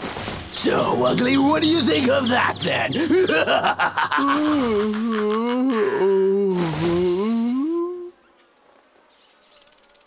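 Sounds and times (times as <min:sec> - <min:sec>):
cartoon character gloating laugh: 0:02.9 - 0:06.1
faint rapid buzz: 0:08.3 - 0:10.0.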